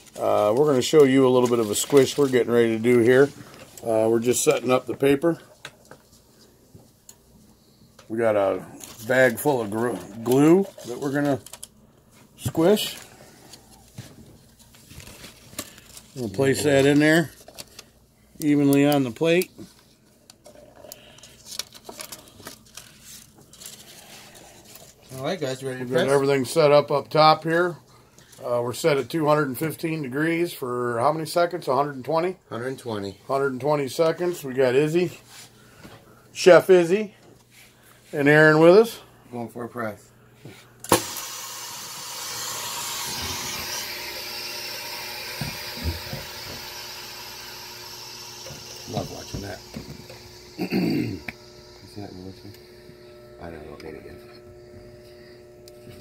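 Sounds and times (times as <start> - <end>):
parchment paper rustling: 0.0 - 7.0, 8.7 - 18.0, 20.9 - 25.4.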